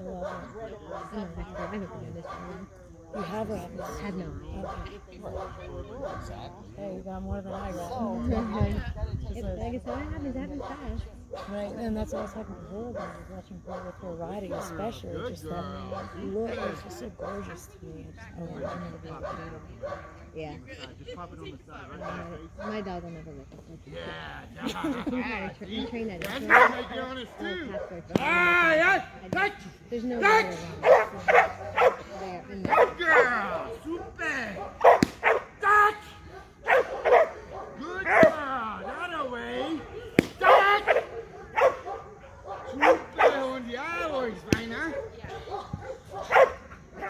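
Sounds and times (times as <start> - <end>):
people's voices: 0.0 - 47.0.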